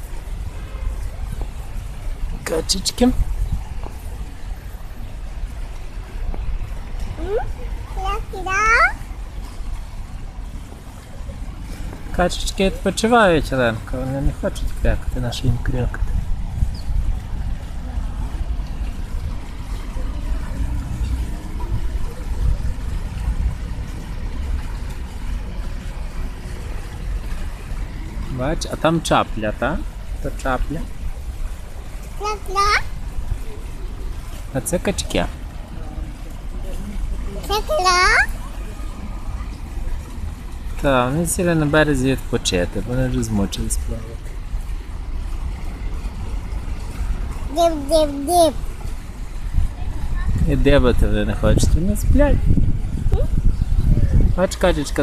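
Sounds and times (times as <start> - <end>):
wind buffeting microphone: 0.0 - 4.6, 14.3 - 25.3, 47.2 - 55.0.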